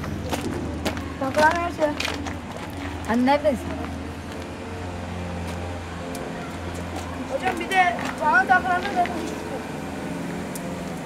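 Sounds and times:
motor humming: 0.1 - 11.0.

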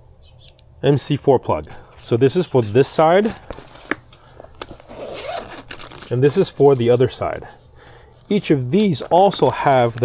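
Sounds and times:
fabric rustling and scraping: 4.7 - 7.0.

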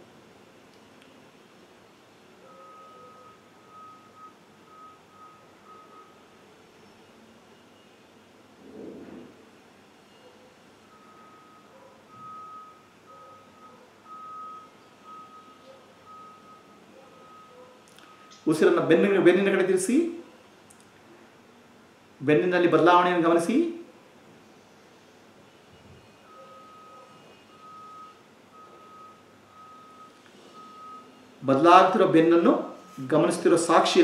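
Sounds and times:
faint steady-pitch beeping: 2.4 - 8.4, 9.8 - 18.5, 24.5 - 34.0.

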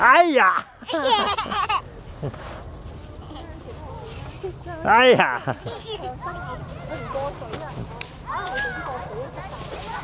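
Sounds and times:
children's voices: 5.5 - 10.0.

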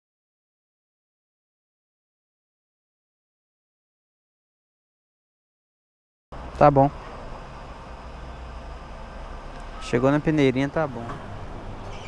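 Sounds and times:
low hum: 6.4 - 12.0.

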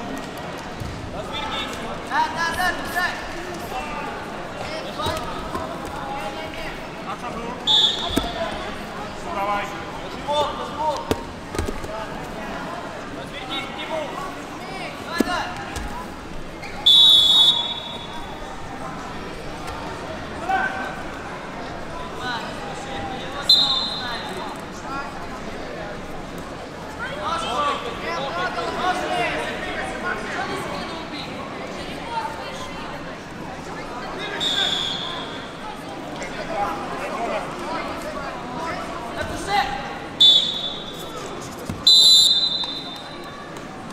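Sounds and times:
voices in sports hall: 0.0 - 43.9
referee's whistle blast: 7.7 - 8.4, 16.8 - 18.2, 23.5 - 24.2, 34.4 - 35.4, 40.2 - 41.0, 41.8 - 43.0.

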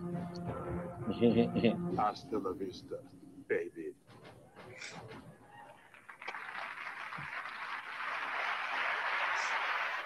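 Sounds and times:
audience applauding: 5.5 - 10.0.

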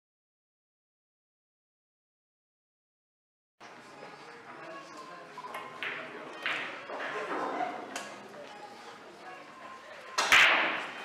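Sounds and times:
faint talk: 3.7 - 11.0
pool ball click: 5.6 - 6.8.

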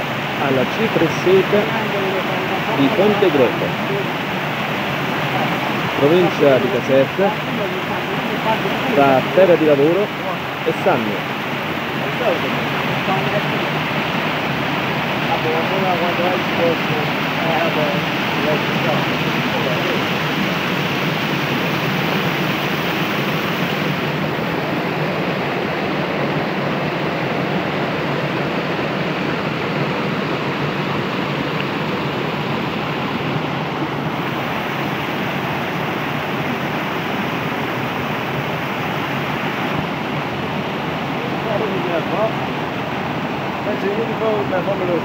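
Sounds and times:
stream rushing over rocks: 0.0 - 45.0.

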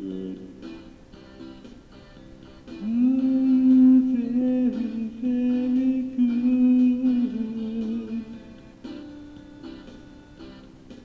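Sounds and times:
man humming with echo: 0.0 - 0.6, 2.8 - 8.6
guitar backing track: 0.0 - 11.0.

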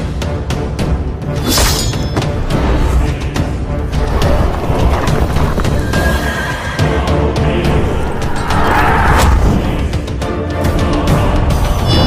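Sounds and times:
film trailer music: 0.0 - 12.0.

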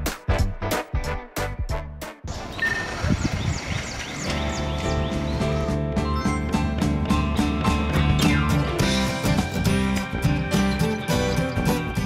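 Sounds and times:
background music with beat and bass: 0.0 - 2.3, 4.3 - 12.0
bird chirping: 2.3 - 5.7.

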